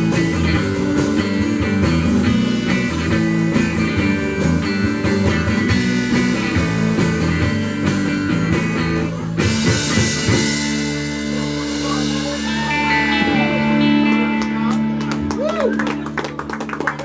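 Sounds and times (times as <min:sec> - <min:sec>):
rock band playing: 0:00.0 - 0:17.0
guitar chord ringing: 0:10.5 - 0:15.4.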